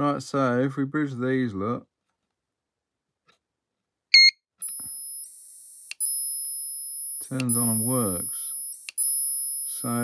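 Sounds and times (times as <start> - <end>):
high-pitched electronic whine: 4.6 - 10.0
click: 8.8 - 9.1.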